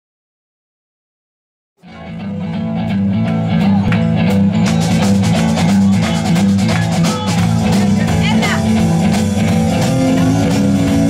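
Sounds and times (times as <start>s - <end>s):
electric guitars: 1.8s - 11.0s
drum kit steady beat: 2.8s - 11.0s.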